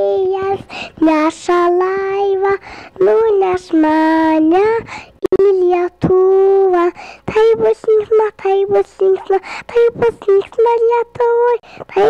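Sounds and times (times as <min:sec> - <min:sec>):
child singing into a microphone: 0:00.0 - 0:12.0.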